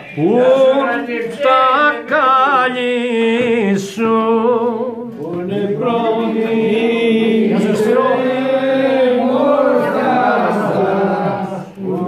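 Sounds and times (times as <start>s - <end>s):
men singing unaccompanied: 0.1s - 12.0s.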